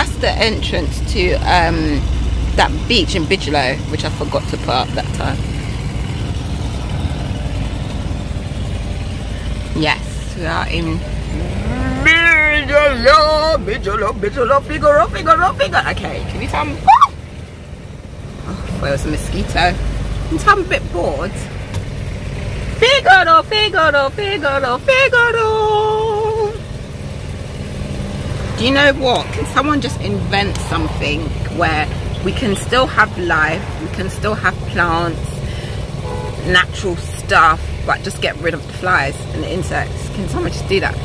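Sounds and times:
car engine rumble and road noise: 0:00.0 - 0:41.0
person speaking: 0:10.6 - 0:13.8.

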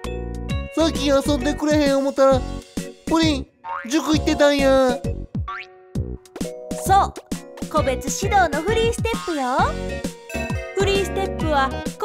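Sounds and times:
bouncy children's music: 0:00.0 - 0:12.0.

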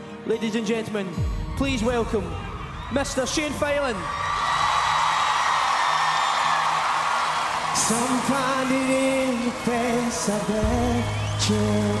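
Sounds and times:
audience cheering: 0:01.6 - 0:12.0.

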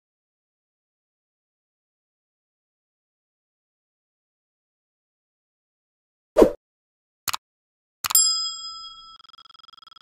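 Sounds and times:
bell ding: 0:08.1 - 0:10.0.

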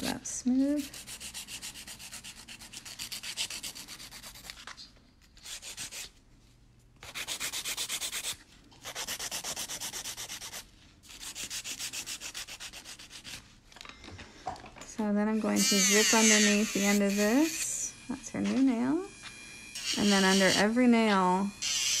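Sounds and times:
nail file rubbing on nail: 0:00.8 - 0:06.2, 0:07.0 - 0:13.4, 0:15.6 - 0:17.6.

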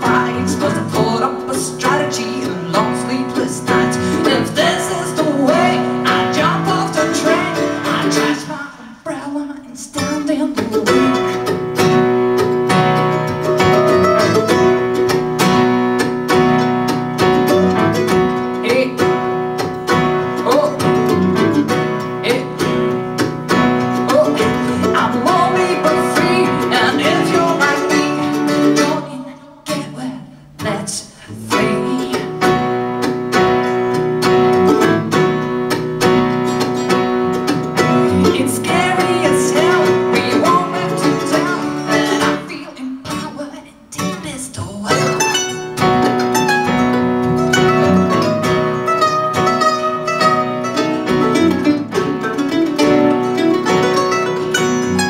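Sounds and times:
woman singing: 0:00.0 - 0:11.7, 0:18.6 - 0:19.3, 0:20.3 - 0:21.2, 0:22.2 - 0:22.8, 0:23.9 - 0:32.8, 0:37.8 - 0:45.2
acoustic guitars: 0:00.0 - 0:55.0.

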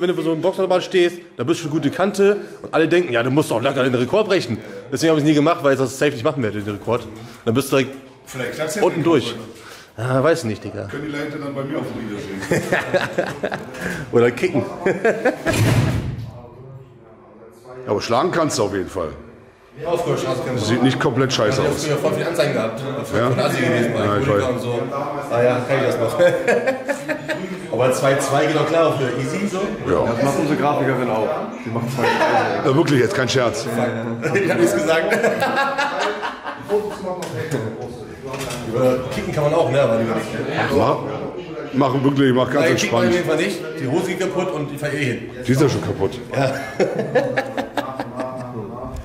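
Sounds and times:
man chuckling and talking: 0:12.4 - 0:15.5, 0:46.4 - 0:48.8.

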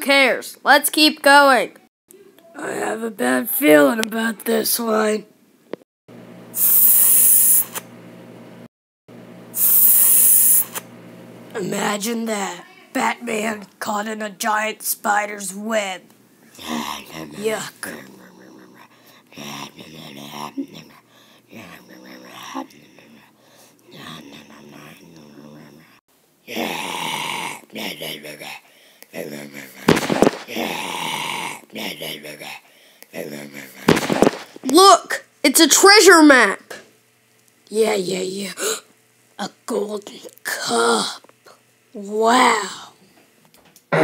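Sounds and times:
spray hiss: 0:06.6 - 0:07.8, 0:09.6 - 0:10.8
child making vocal sound effects: 0:16.6 - 0:23.2, 0:23.9 - 0:28.2, 0:34.6 - 0:36.7, 0:39.4 - 0:43.0.

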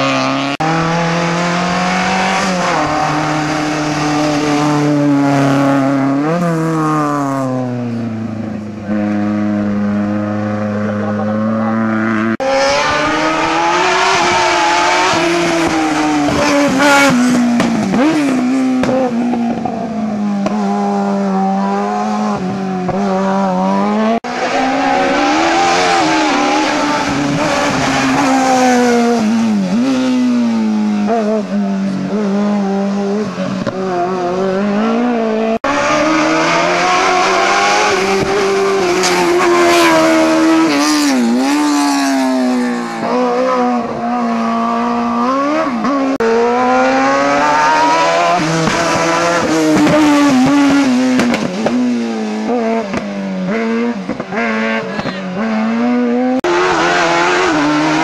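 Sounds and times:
racing car engines revving: 0:00.0 - 0:58.0.

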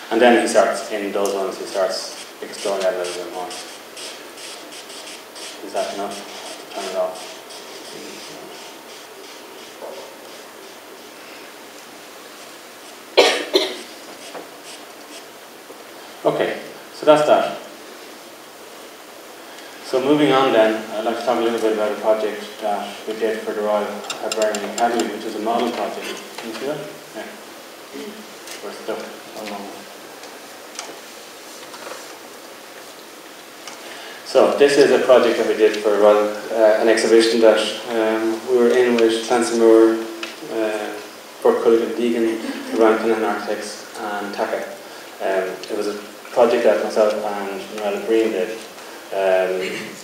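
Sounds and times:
lecture hall hiss: 0:00.0 - 0:50.0
person coughing: 0:13.2 - 0:13.9, 0:49.6 - 0:50.0.

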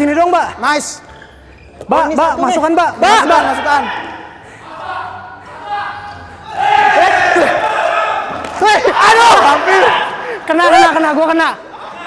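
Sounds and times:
players shouting indoors: 0:03.0 - 0:12.0.

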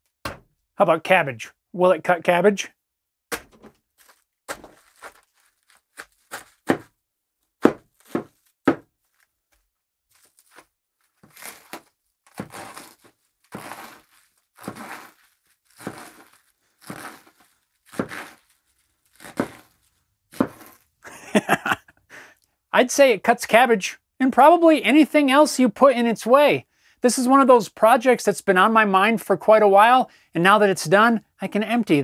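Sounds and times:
knife chopping on wooden bench: 0:00.2 - 0:00.5, 0:03.3 - 0:03.7, 0:06.6 - 0:06.9, 0:07.6 - 0:08.9, 0:13.6 - 0:14.0, 0:14.6 - 0:15.1, 0:15.8 - 0:16.2, 0:16.8 - 0:17.3, 0:17.9 - 0:18.4, 0:19.2 - 0:19.7, 0:20.3 - 0:20.8
knife cutting through cabbage: 0:03.4 - 0:06.9, 0:07.6 - 0:08.8, 0:10.2 - 0:20.9.

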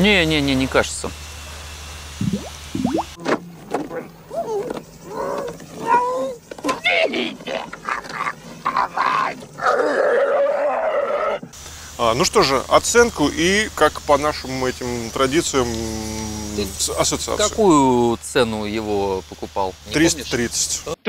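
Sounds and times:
outdoor background: 0:00.0 - 0:21.0
straining grunts and cries: 0:04.3 - 0:11.5.

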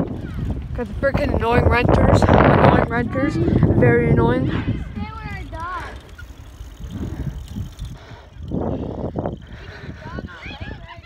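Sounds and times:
bicycle rolling over rough asphalt: 0:00.0 - 0:11.0
wind buffeting microphone: 0:00.0 - 0:11.0.

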